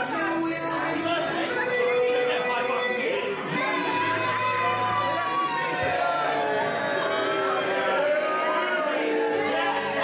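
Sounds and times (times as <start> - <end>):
crowd booing: 2.8 - 10.0.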